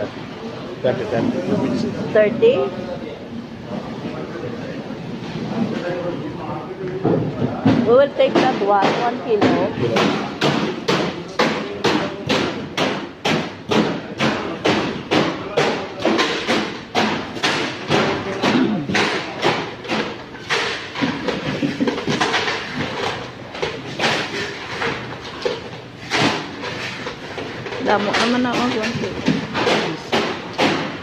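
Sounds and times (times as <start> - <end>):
market chatter: 0.0 - 31.0.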